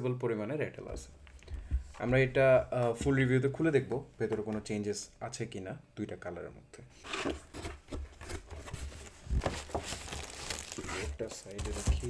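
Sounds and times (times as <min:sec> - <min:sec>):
cardboard box being opened: 0:07.1 - 0:12.0
plastic bag crinkling: 0:08.8 - 0:12.0.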